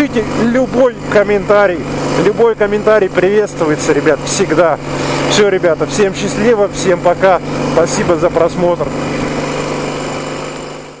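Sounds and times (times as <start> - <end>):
motorcycle engine running: 0.0 - 11.0
road and air noise: 0.0 - 11.0.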